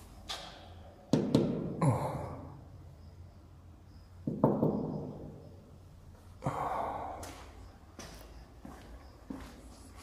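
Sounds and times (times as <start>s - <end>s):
person breathing out heavily: 6.4s - 7.6s.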